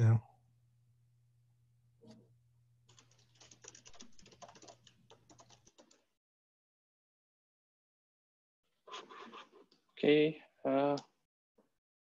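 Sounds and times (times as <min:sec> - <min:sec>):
typing on computer keyboard: 0:02.9 - 0:06.1.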